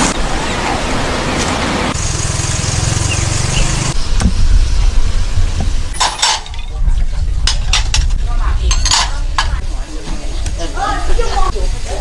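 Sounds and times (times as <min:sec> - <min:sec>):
vehicle engine running: 0:00.9 - 0:05.8.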